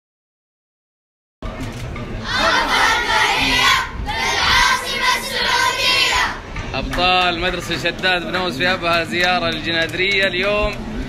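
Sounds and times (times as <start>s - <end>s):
boys shouting together: 2.2s - 6.4s.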